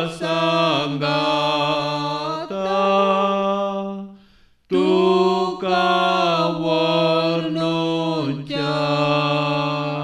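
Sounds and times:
slow sung chant: 0.0 - 10.0.

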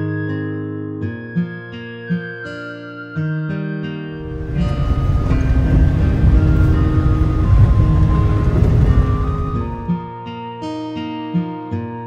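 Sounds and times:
car rumbling on dirt road: 4.2 - 10.0.

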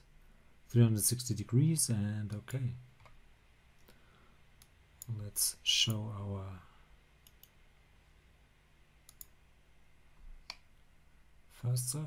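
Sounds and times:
computer mouse clicks: 7.2 - 7.6, 9.1 - 9.4.

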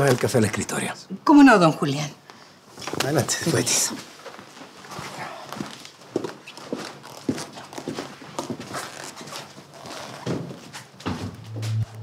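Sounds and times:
footsteps on hard floor: 4.9 - 12.0.

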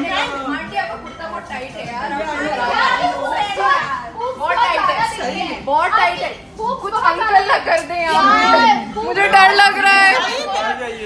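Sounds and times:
people arguing: 2.1 - 11.0.

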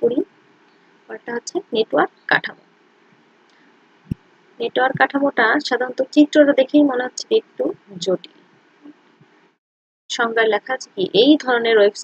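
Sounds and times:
woman speaking: 0.0 - 0.2, 1.1 - 2.6, 4.6 - 8.3, 10.1 - 12.0.

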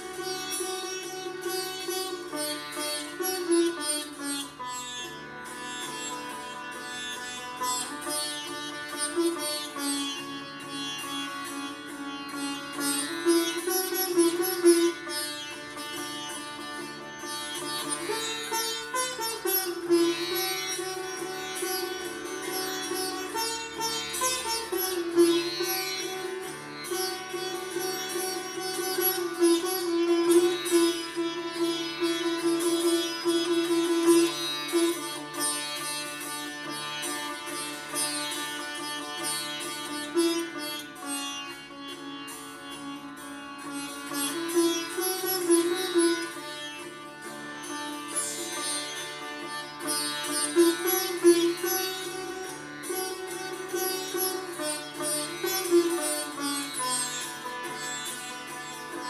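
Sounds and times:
sitar melody over a drone: 0.0 - 59.0.

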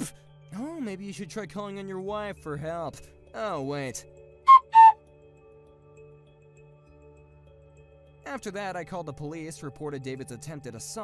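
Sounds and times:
quiet background music: 0.0 - 11.0
two-note whistle sound effect: 4.5 - 5.0.

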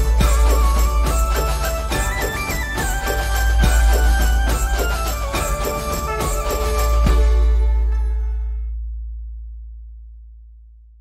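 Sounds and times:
deep sub-bass tone: 6.7 - 11.0.

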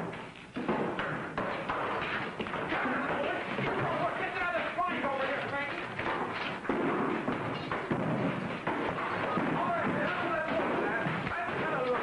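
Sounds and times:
thumps and knocks: 0.0 - 12.0.

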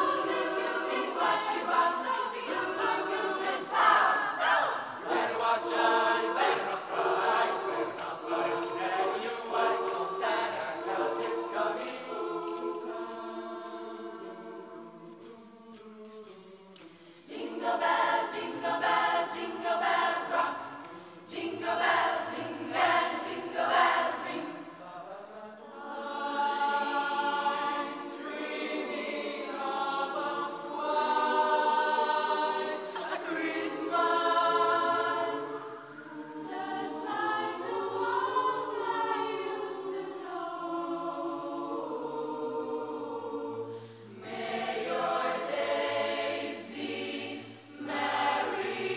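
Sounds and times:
choir singing a cappella: 0.0 - 48.9.

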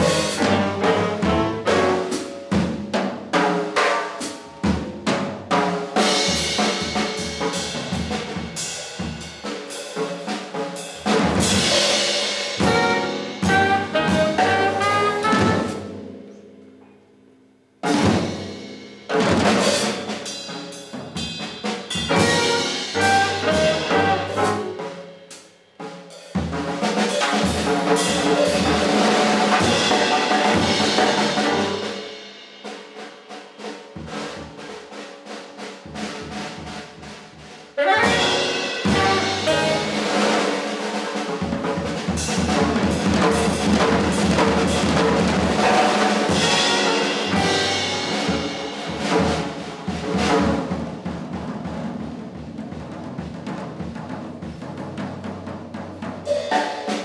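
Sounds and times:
double bass: 0.0 - 2.8, 12.6 - 16.7, 22.1 - 24.8, 35.9 - 40.2, 41.4 - 51.1
drum kit: 0.0 - 17.0, 17.8 - 57.0
piano: 0.0 - 57.0
tenor saxophone: 12.6 - 15.8, 22.1 - 24.7, 37.8 - 40.3, 45.6 - 48.0.

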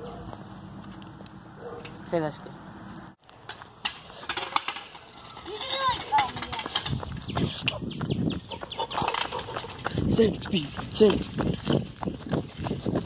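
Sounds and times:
running footsteps on asphalt: 0.3 - 1.8, 5.8 - 13.0.

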